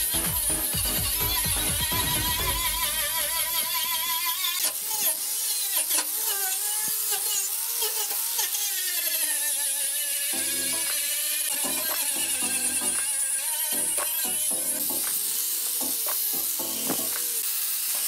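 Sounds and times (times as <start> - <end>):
angle grinder grinding metal: 0.0 - 18.0.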